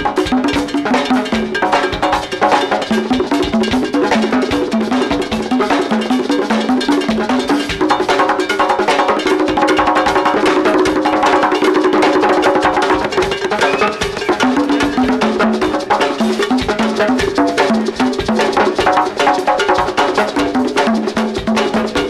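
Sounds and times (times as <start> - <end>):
fast conga drumming: 0.0 - 22.0
sharp percussion slaps: 0.0 - 22.0.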